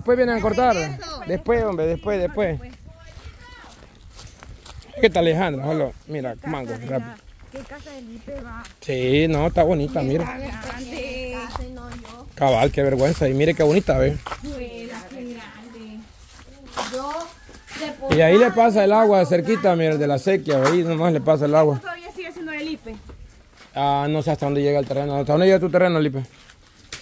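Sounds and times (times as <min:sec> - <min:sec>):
quiet conversational speech: 0:00.0 - 0:26.4
footsteps on dry leaves: 0:02.6 - 0:08.8, 0:10.0 - 0:18.7, 0:21.4 - 0:27.0.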